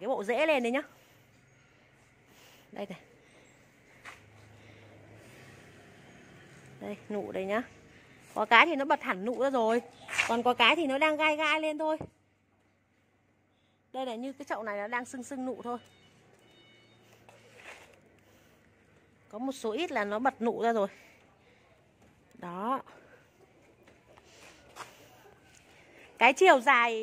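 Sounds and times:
soft rustle: 6.4s - 10.6s, 17.0s - 18.7s.

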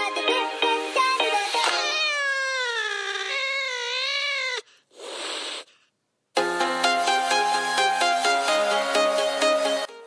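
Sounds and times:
cat meowing: 1.8s - 4.7s.

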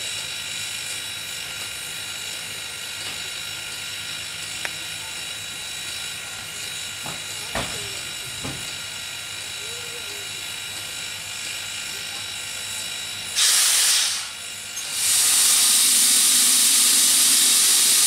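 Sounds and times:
steam locomotive hissing: 0.0s - 18.0s.

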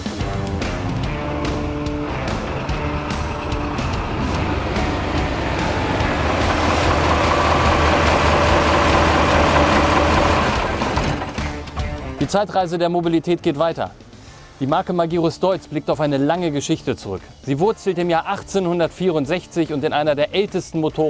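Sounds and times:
truck engine running: 0.0s - 14.1s
background music: 0.0s - 21.0s.

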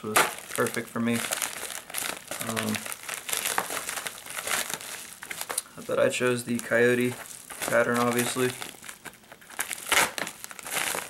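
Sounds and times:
plastic mailer crinkling: 0.0s - 11.0s.

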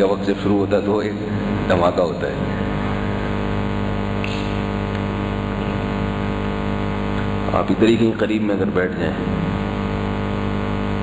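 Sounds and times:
steady multi-pitched hum: 0.0s - 11.0s.

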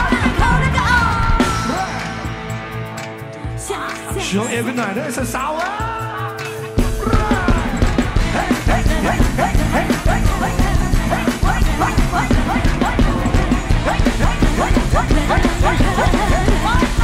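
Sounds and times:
repeated upward-sliding guitar notes: 0.0s - 17.0s
rock band playing live: 0.0s - 17.0s.

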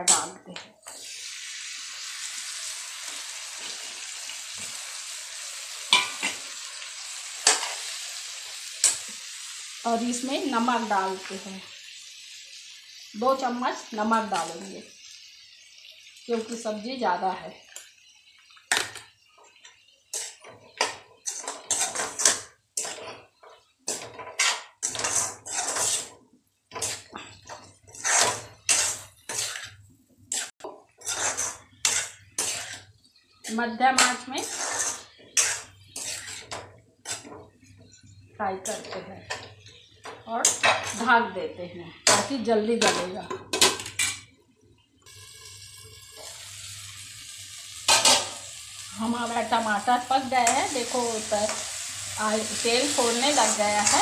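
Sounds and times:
food sizzling in oil: 0.0s - 54.0s
metal spatula scraping a metal pan: 2.0s - 9.6s, 19.6s - 41.1s, 47.9s - 54.0s.

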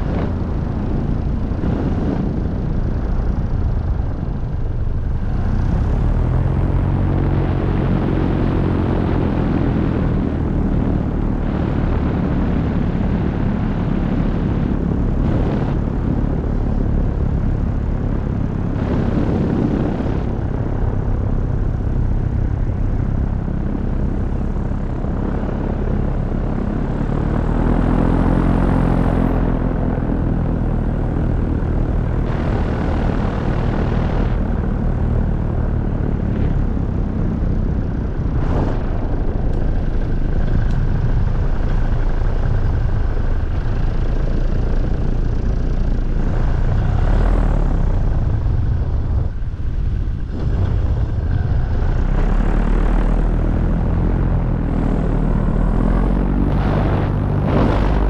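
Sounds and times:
paramotor engine droning: 0.0s - 58.0s
wind noise on microphone: 0.0s - 58.0s.

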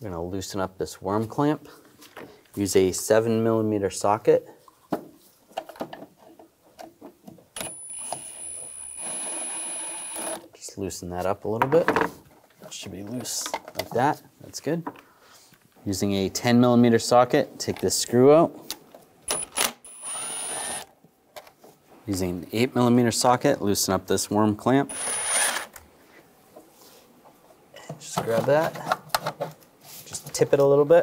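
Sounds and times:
electric ratchet whining: 7.6s - 10.4s, 19.9s - 20.9s, 24.9s - 25.8s
impact driver bursts: 24.9s - 25.7s.

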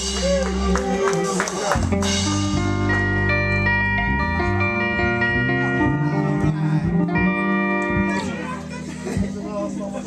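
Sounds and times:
rock band holding a chord: 0.0s - 10.0s.

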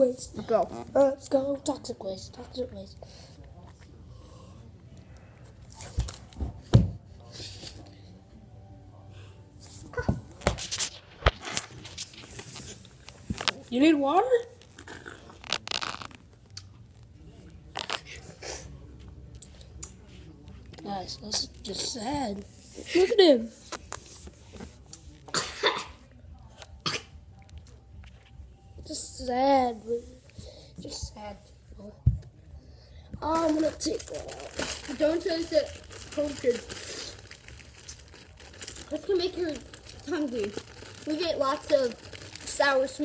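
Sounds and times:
plastic bag crinkling: 14.6s - 16.2s, 33.3s - 43.0s
crunching hard candy: 14.6s - 16.7s, 33.4s - 43.0s.

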